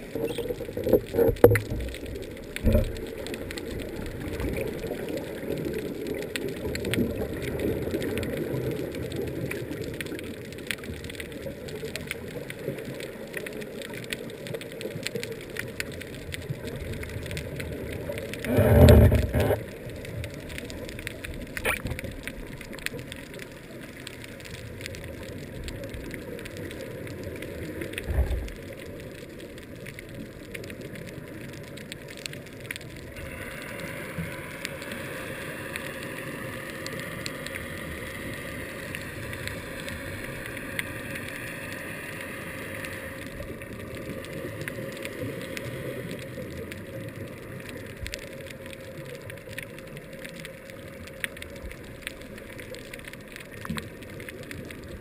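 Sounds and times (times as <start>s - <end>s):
soft hiss: 0.0s - 55.0s.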